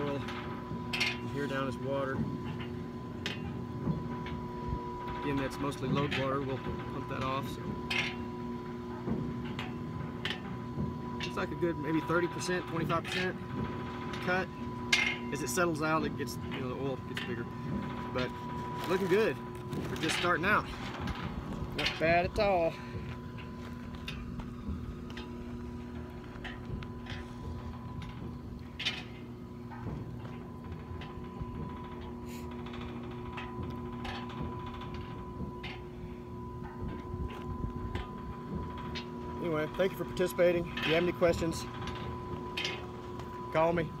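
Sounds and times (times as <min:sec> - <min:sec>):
faint steady hum: 0:00.0 - 0:44.0
pumpjack low rumble: 0:00.0 - 0:44.0
faint clicks and creaks: 0:23.0 - 0:43.6.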